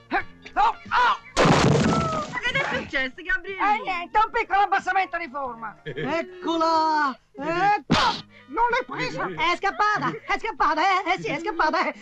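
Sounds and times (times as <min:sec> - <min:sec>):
loud crash into pit: 0:01.4 - 0:02.8.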